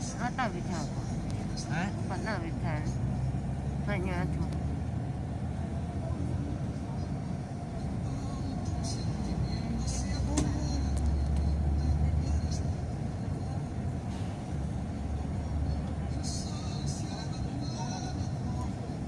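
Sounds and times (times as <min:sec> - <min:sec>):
engine and tyre rumble: 0:00.0 - 0:19.0.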